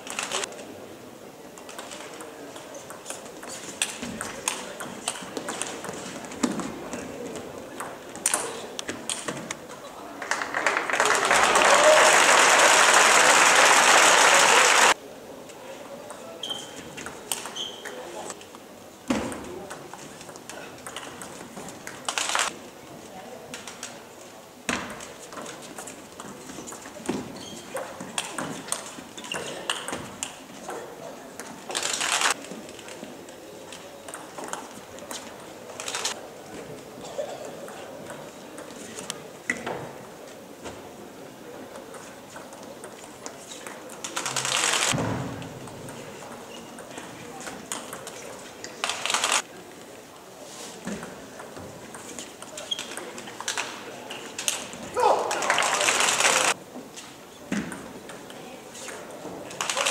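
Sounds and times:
voices in a hall: 0.0s - 59.9s.

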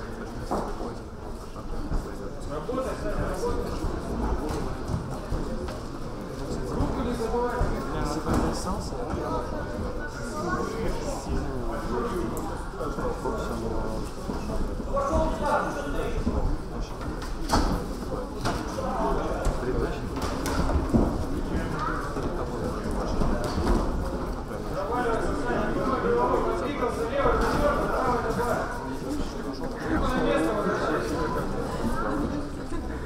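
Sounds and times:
spectators' voices: 0.0s - 33.0s.

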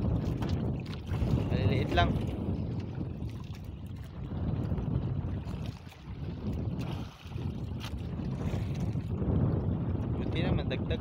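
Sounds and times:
choppy sea washing against boat: 0.0s - 11.0s
wind gusting on microphone: 0.0s - 11.0s.

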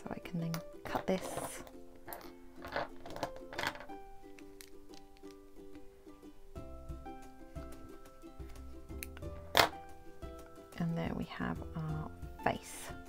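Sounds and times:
plucked string background music: 0.0s - 13.0s.

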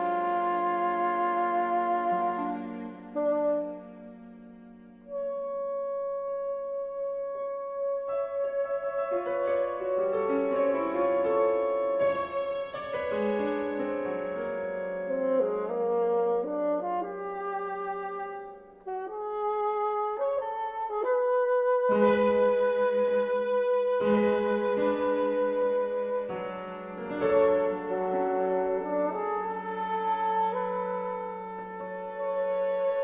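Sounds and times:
held high woodwind note: 0.0s - 33.0s.

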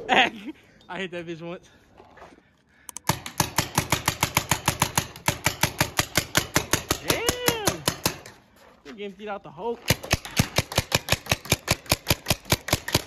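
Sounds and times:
paintball marker firing rapidly: 3.0s - 8.3s, 9.9s - 13.0s.

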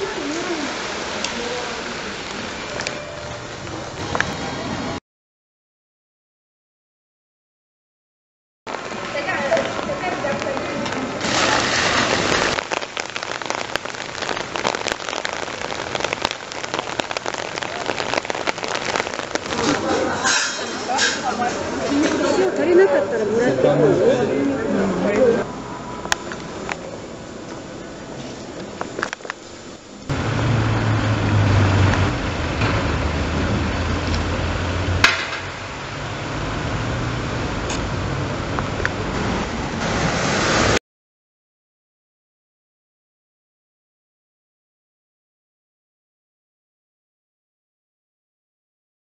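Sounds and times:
raindrops pattering: 0.0s - 4.6s, 8.7s - 22.6s, 28.4s - 40.8s
outdoor noise: 0.0s - 5.0s, 8.7s - 40.8s
rain falling: 0.0s - 5.0s, 8.7s - 40.8s
vehicle engine humming: 30.1s - 39.7s.

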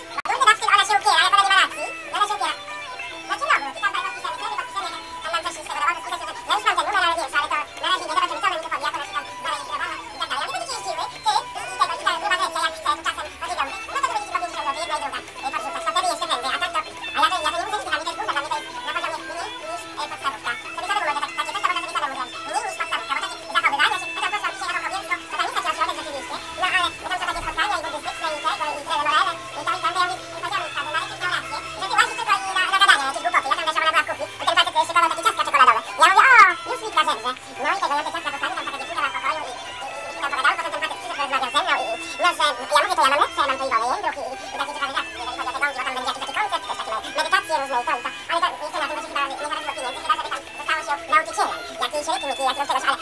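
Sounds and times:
background music with held note: 0.0s - 53.0s.

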